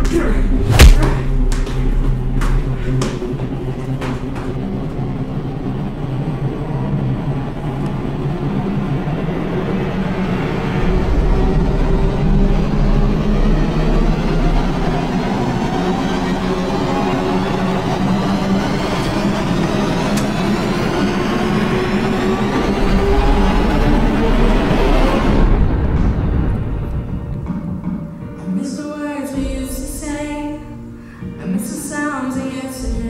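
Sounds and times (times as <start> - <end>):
low droning score: 0.0 - 28.3
loud thud: 0.6 - 1.7
sharp knocks: 0.7 - 3.3.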